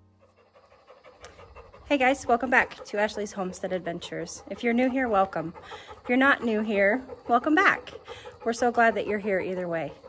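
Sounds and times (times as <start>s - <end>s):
rapid panting: 0.0s - 10.0s
woman's voice: 1.9s - 10.0s.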